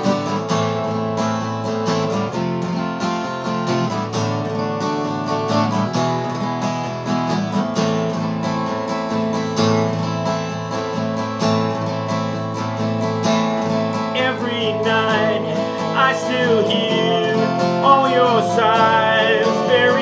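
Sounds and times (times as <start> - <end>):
acoustic guitar strummed: 0.0 - 20.0
man singing: 14.1 - 20.0.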